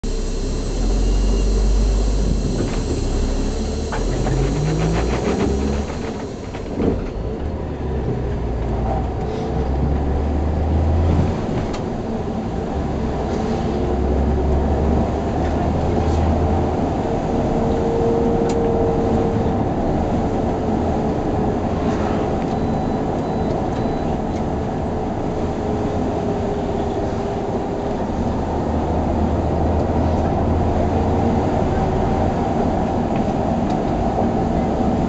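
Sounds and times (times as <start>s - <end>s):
bus engine droning: 0.0s - 35.0s.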